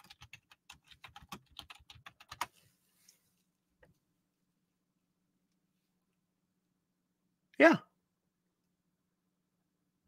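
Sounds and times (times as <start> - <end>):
faint keyboard typing: 0.0 - 3.2.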